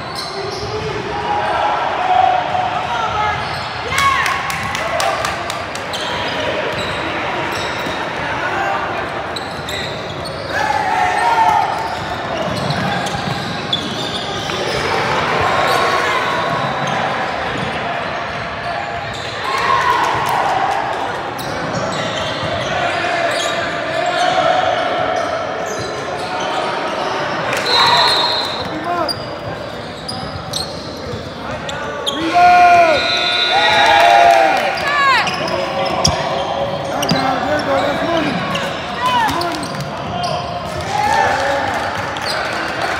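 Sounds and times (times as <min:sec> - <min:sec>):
sneakers squeaking on hardwood: 0:03.3 - 0:03.8, 0:09.3 - 0:14.9, 0:27.7 - 0:32.3, 0:34.8 - 0:40.6
people calling out: 0:32.0 - 0:41.5.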